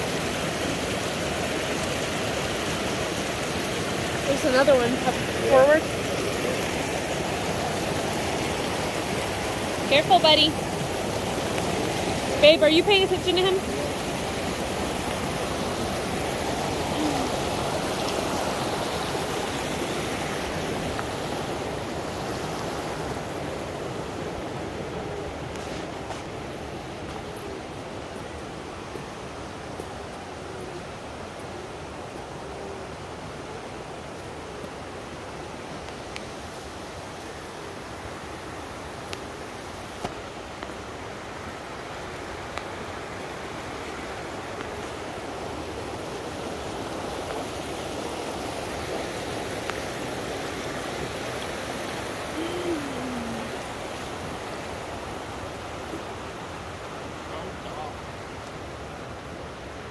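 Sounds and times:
creek water running over cascades: 0.0 - 59.9.

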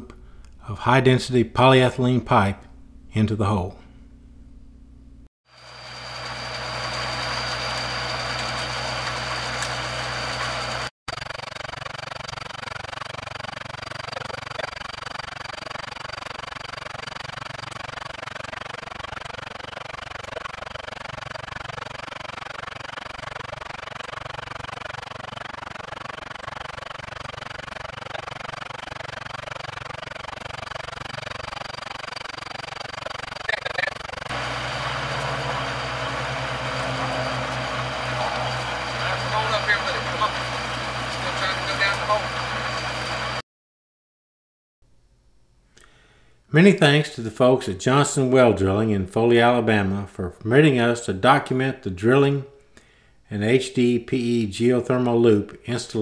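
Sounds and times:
drilling rig engine running: 5.5 - 43.4.

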